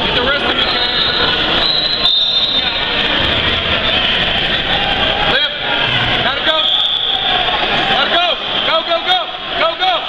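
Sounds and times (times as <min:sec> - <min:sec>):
crowd shouting: 0:00.1 - 0:10.0.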